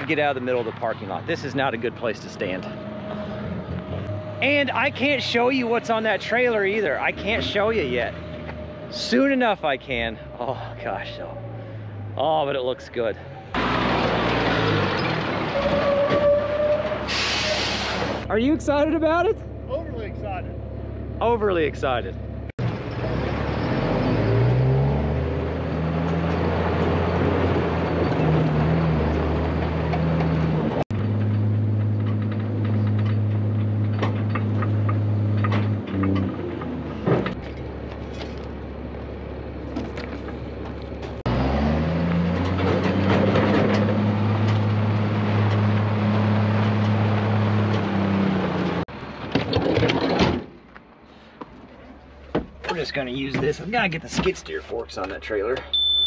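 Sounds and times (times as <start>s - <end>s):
engine revving: 13.1s - 15.9s, 21.2s - 37.4s, 41.2s - 48.9s.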